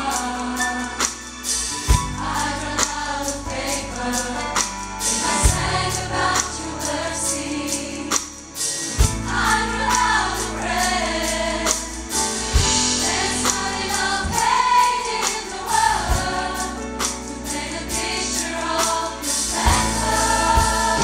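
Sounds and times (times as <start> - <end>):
gospel choir singing with band: 0.0 - 21.0.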